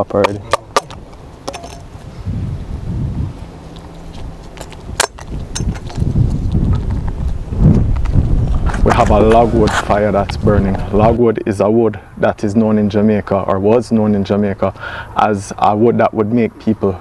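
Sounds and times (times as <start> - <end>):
low rumble: 1.8 - 11.3.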